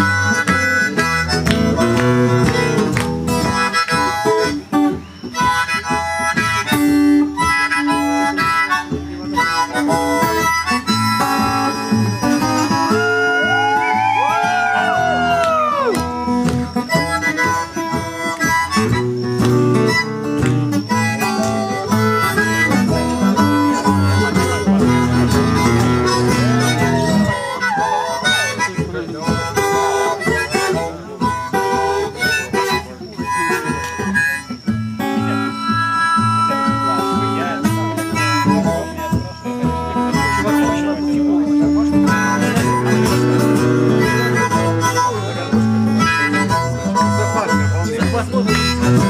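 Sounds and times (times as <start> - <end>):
harmonica bending notes: 0.0 - 49.0
strummed acoustic guitar: 0.0 - 49.0.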